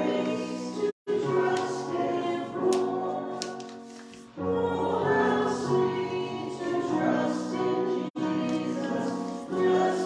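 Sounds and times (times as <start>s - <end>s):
choir singing sacred music: 0.0s - 10.0s.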